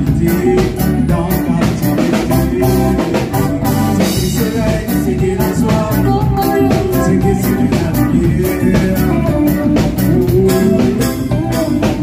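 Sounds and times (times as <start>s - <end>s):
drum kit beat: 0.0s - 12.0s
live band playing: 0.0s - 12.0s
organ-like keyboard: 0.0s - 12.0s.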